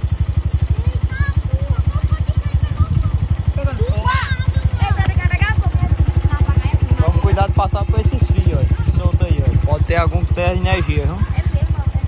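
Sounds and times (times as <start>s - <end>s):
faint voices: 0.0s - 12.0s
motorcycle engine idling: 0.0s - 12.0s.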